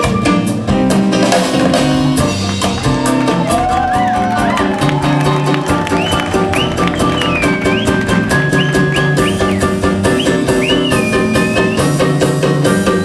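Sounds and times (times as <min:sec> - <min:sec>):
bass: 0:00.0 - 0:13.0
drum kit: 0:00.0 - 0:13.0.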